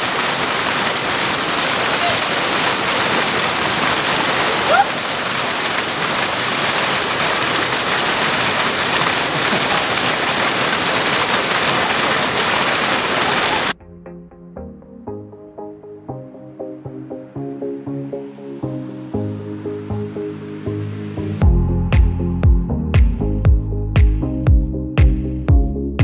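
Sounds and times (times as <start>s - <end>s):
waterfall rushing: 0.0s - 13.8s
voice exclamation: 1.8s - 2.5s, 4.5s - 5.0s
music: 13.8s - 26.0s.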